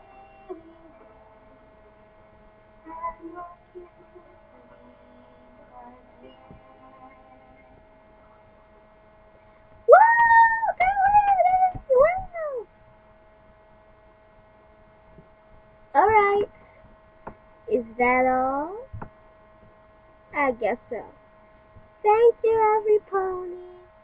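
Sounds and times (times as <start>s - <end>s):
steady electrical hum: 0.0s - 24.0s
high-pitched voice squealing: 9.9s - 12.6s.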